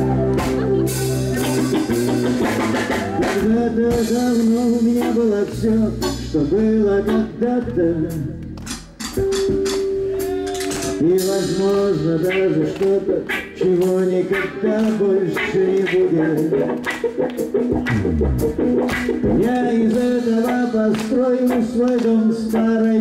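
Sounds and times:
acoustic and electric guitars: 0:00.0 - 0:23.0
drum kit: 0:00.0 - 0:23.0.

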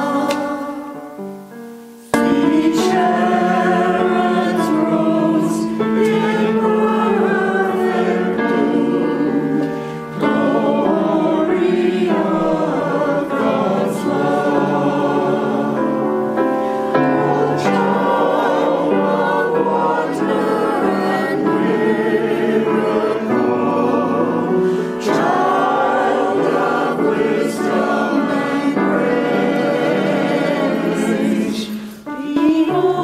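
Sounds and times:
church choir singing: 0:00.0 - 0:33.0.

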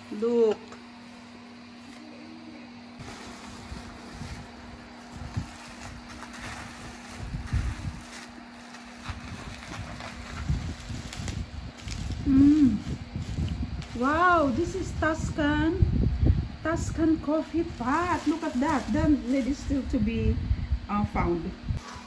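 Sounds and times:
bubble wrap and plastic rustling: 0:03.0 - 0:15.4, 0:17.2 - 0:20.1
strong wind gusting: 0:09.1 - 0:21.8.

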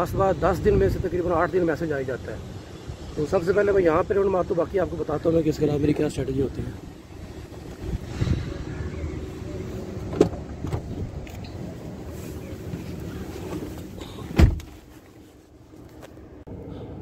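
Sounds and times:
street rumble: 0:00.0 - 0:17.0
car door shutting: 0:10.0 - 0:11.6, 0:12.7 - 0:14.9.

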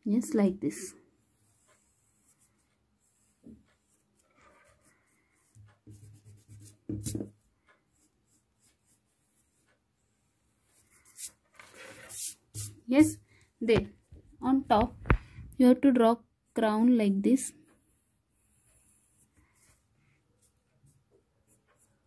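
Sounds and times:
pencil scratching on paper: 0:01.2 - 0:09.8, 0:10.6 - 0:13.1, 0:17.7 - 0:22.0
hand rubbing paper: 0:10.7 - 0:13.1.

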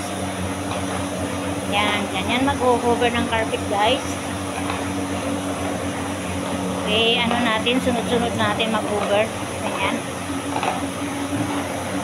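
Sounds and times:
vacuum cleaner running: 0:00.0 - 0:12.0.

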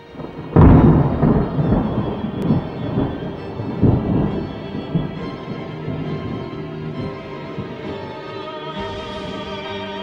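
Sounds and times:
thunder rumble: 0:00.0 - 0:09.8
orchestral soundtrack music: 0:00.0 - 0:10.0.

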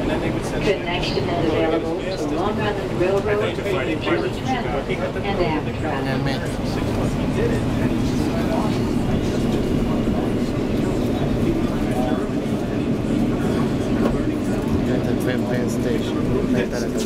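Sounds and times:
passengers talking: 0:00.0 - 0:17.0
subway train rumbling and rattling: 0:00.0 - 0:17.0.

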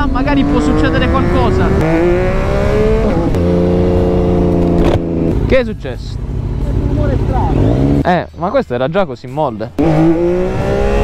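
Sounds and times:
motorcycle engine: 0:00.0 - 0:08.1, 0:09.8 - 0:11.0.

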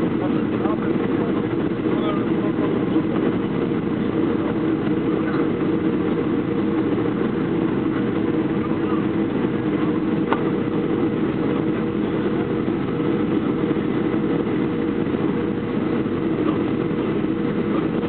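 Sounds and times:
jet engines droning: 0:00.0 - 0:18.0.

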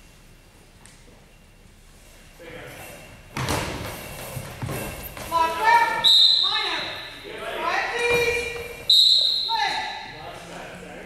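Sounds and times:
referee's whistle blast: 0:06.0 - 0:07.2, 0:08.9 - 0:10.1.

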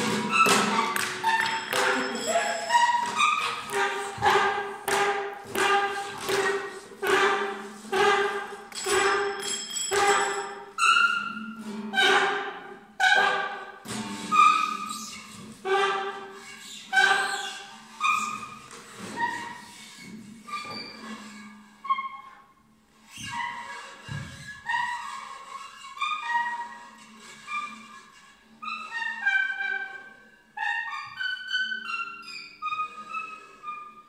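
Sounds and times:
saxophone neck squealing notes: 0:00.0 - 0:34.0.

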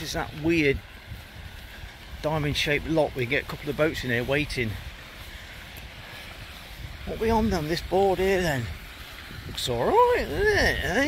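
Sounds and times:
faint outdoor hiss: 0:00.0 - 0:11.0
wind buffeting microphone: 0:00.0 - 0:11.0.

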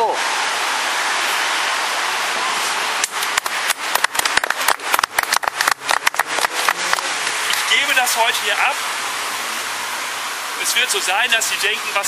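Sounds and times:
steady rushing noise: 0:00.0 - 0:12.0
people clapping: 0:03.0 - 0:07.7.

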